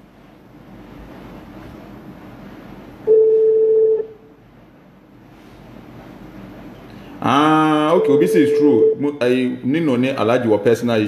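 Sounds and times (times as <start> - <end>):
telephone line beep: 3.1 - 4.2, 8.0 - 9.1.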